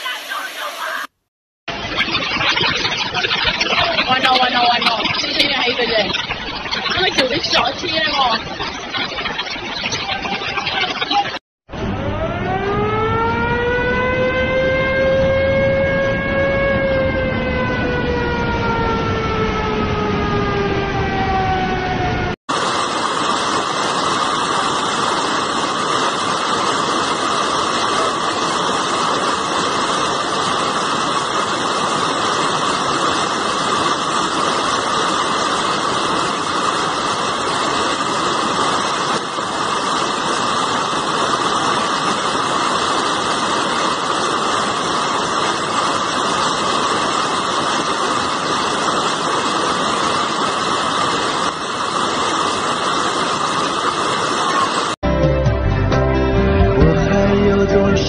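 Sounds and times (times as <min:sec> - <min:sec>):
river rushing roar: 0:22.5 - 0:55.0.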